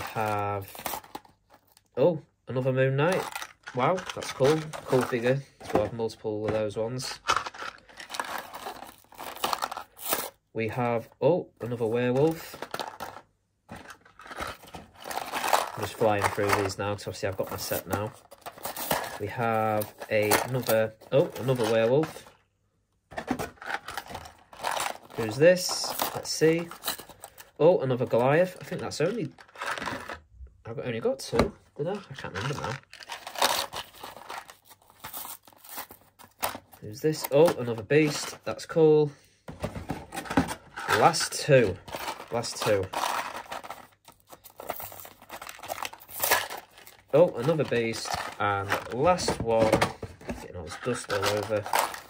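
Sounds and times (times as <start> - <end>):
person speaking: 0.0 - 1.0, 2.0 - 7.4, 10.2 - 12.7, 15.6 - 18.2, 18.9 - 22.4, 25.1 - 29.5, 30.6 - 32.9, 36.8 - 39.2, 40.8 - 43.8, 47.0 - 52.0
cardboard and paper rustling: 0.0 - 1.8, 3.0 - 10.3, 11.6 - 22.4, 23.1 - 30.2, 31.3 - 38.5, 39.5 - 52.0.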